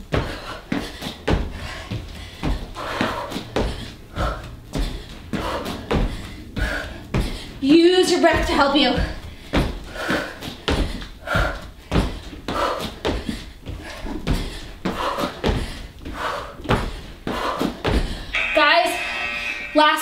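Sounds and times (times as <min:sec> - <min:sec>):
hard breathing: 0:00.0 - 0:07.7, 0:09.0 - 0:18.4
thumps on foam exercise mat: 0:00.0 - 0:15.8.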